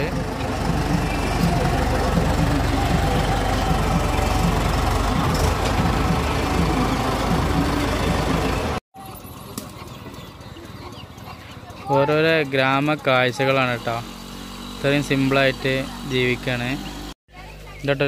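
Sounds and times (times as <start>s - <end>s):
outdoor background: 0.0s - 18.0s
tractor diesel engine running: 0.0s - 18.0s.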